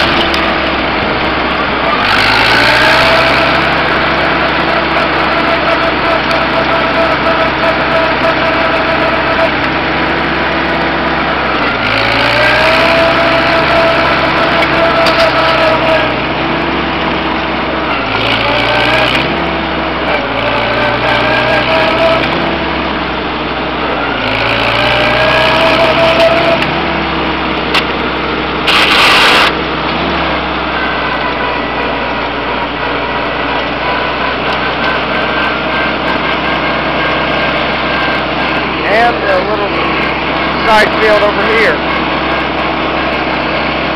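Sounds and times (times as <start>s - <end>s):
tractor engine running: 0.0s - 43.9s
loud rush of noise: 20.8s - 43.9s.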